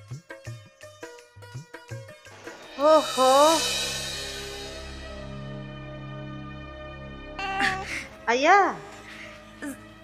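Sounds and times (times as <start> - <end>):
background music: 0.0 - 10.0
infant crying loudly: 7.4 - 8.0.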